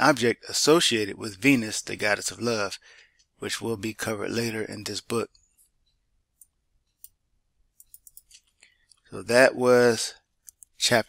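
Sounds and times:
computer mouse clicks: 7.8s - 9.0s.

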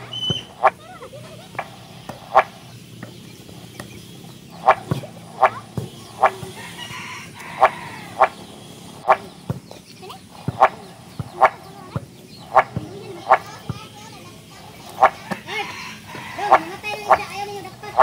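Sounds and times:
chickens clucking: 0.0s - 18.0s.

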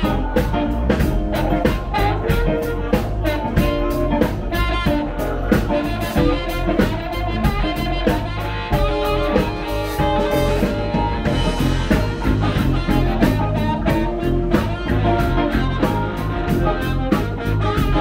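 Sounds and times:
drums: 0.0s - 18.0s
electric bass: 0.0s - 18.0s
electric guitar: 0.0s - 18.0s
harmonica long held notes: 0.0s - 18.0s.

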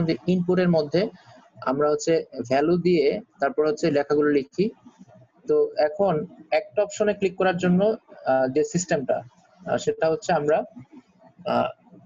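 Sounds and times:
person talking: 0.0s - 4.7s, 5.5s - 10.9s, 11.5s - 11.7s.

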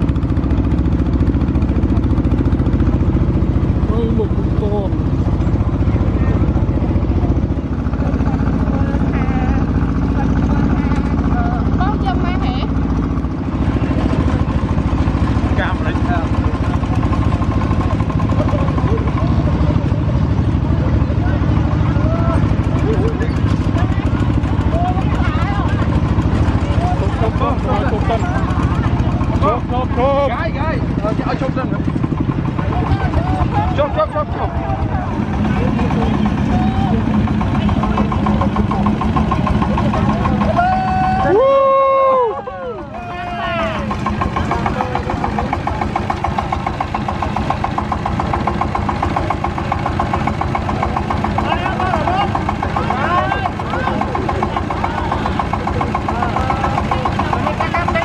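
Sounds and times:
faint voices: 0.0s - 58.0s
tractor diesel engines chugging: 0.0s - 58.0s.

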